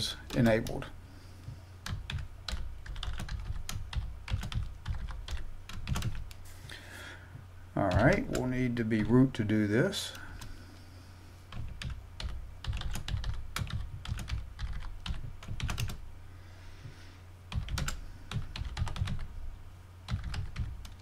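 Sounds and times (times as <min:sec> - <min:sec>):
low steady hum: 0:00.0 - 0:21.0
typing on computer keyboard: 0:01.8 - 0:06.4, 0:11.5 - 0:16.0, 0:17.5 - 0:19.2, 0:20.1 - 0:21.0.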